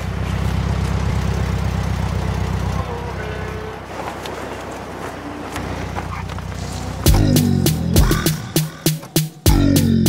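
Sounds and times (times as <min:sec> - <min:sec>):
car engine low rumble: 0:00.0 - 0:08.8.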